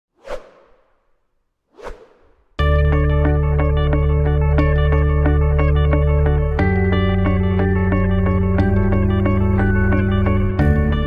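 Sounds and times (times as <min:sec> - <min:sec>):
whoosh sound effects: 0:00.1 - 0:02.6.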